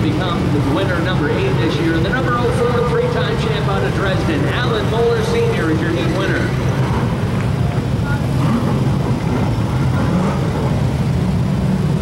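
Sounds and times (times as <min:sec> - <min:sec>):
stock car engines rumbling: 0:00.0 - 0:12.0.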